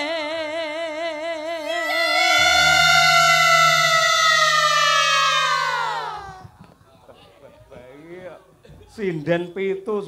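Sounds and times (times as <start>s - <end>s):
woman singing long high note: 0.0s - 6.5s
low gamelan ringing: 1.9s - 6.5s.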